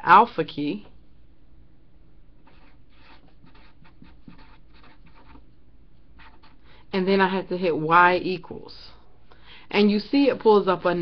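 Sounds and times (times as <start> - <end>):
marker scratching on surface: 2.4 - 6.6.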